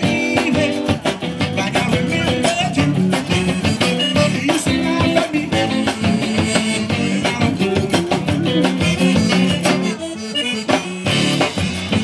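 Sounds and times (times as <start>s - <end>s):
accordion: 0.0s - 12.0s
live zydeco band playing: 0.0s - 12.0s.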